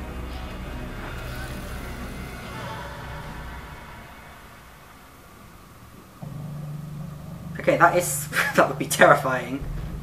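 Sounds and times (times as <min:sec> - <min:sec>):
dramatic television score: 0:00.0 - 0:10.0
low rumble: 0:00.0 - 0:10.0.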